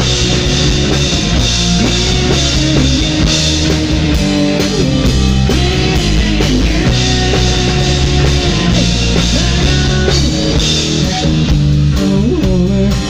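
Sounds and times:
bass guitar: 0.0s - 13.0s
drum kit: 0.0s - 13.0s
electric guitar: 0.0s - 13.0s.

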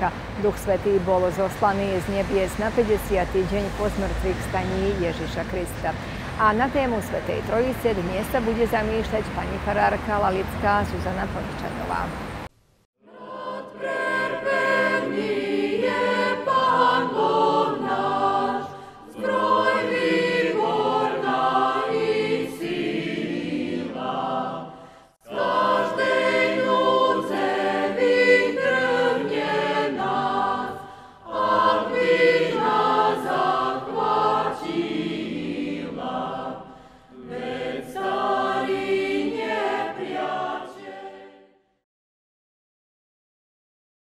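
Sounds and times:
choir singing a hymn: 13.0s - 41.6s.

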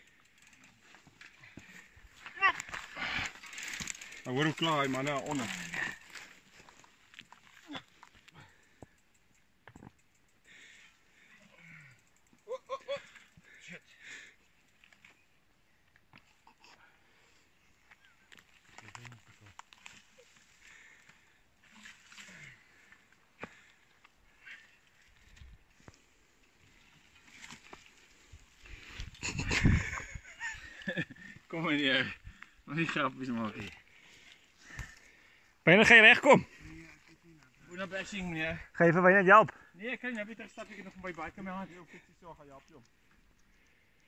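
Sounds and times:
bike parts clicking and rattling: 0.0s - 16.7s, 17.9s - 35.1s.

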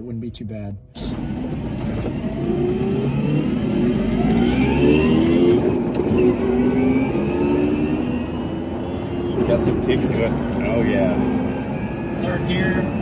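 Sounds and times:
road and wind rumble: 0.0s - 13.0s.

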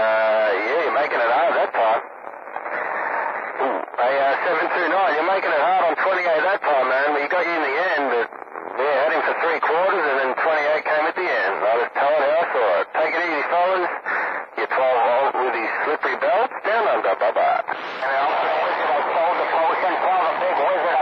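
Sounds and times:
men's voices over radio: 0.0s - 21.0s.

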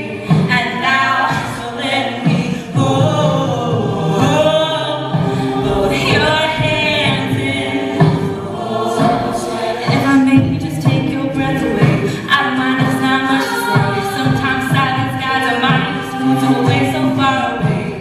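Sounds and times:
woman singing lead: 0.0s - 18.0s
sustained backing voices: 1.4s - 18.0s.

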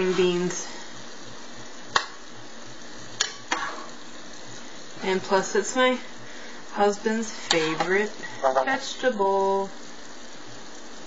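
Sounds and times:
sizzling hiss from pans: 0.0s - 11.0s.

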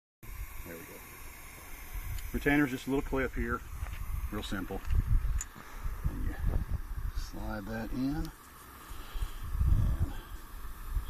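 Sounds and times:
steady hiss: 0.2s - 11.0s
low uneven microphone rumble: 1.8s - 8.3s, 9.1s - 11.0s.

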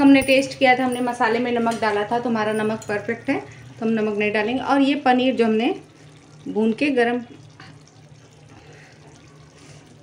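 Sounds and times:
gravy simmering hiss: 3.0s - 10.0s.

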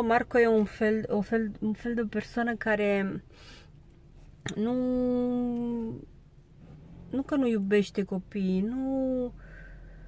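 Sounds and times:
faint low background hum: 0.0s - 10.0s.

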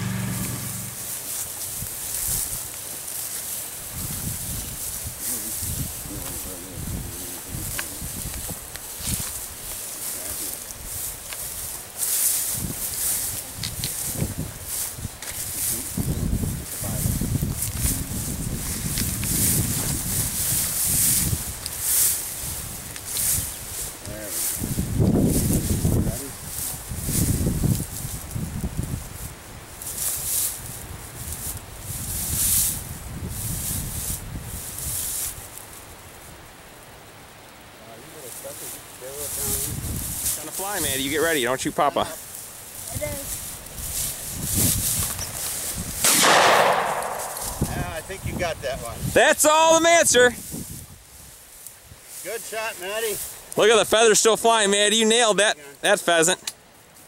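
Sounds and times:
low rumbles: 0.0s - 1.3s, 45.7s - 49.1s
footsteps through dry grass: 0.0s - 36.4s, 38.2s - 57.0s.

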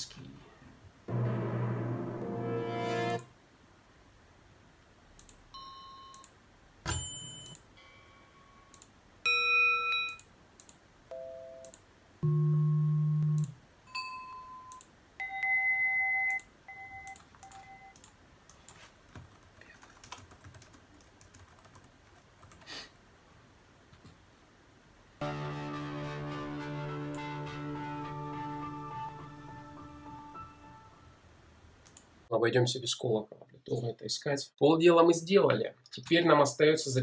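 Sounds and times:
computer keyboard typing: 16.3s - 22.7s.

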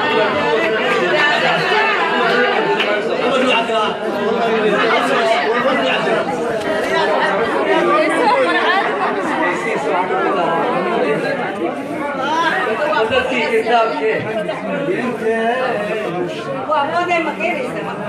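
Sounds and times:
people talking over one another: 0.0s - 18.0s.

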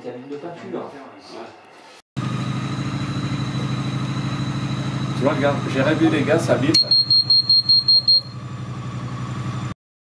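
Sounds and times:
machine hum: 2.2s - 6.7s.

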